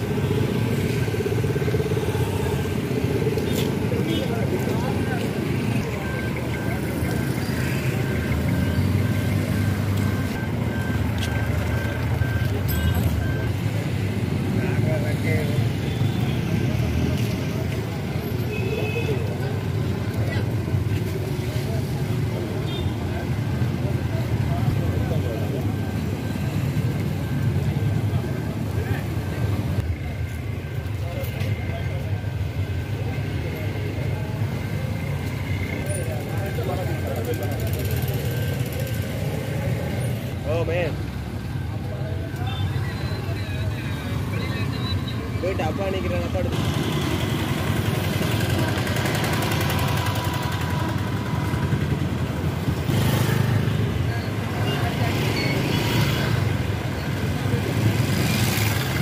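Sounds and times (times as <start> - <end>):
road traffic rumble: 0.0 - 59.0
people talking: 2.0 - 8.6, 11.2 - 18.0, 18.8 - 26.3, 28.0 - 41.0, 41.7 - 46.7.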